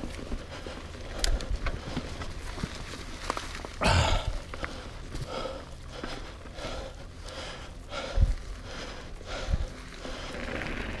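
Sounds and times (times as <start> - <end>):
person breathing hard: 0.0 - 2.4, 3.8 - 10.7
bike rattling over rough ground: 0.0 - 11.0
bike tyres crunching through leaves: 0.0 - 11.0.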